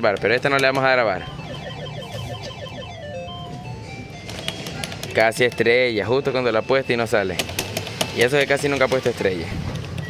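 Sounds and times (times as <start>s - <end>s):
slot machine electronic beeping tune: 0.2s - 7.4s.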